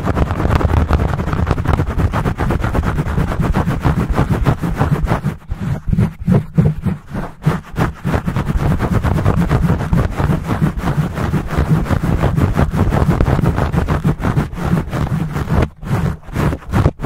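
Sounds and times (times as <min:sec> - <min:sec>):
fingers scratching microphone windscreen: 0:00.0 - 0:17.0.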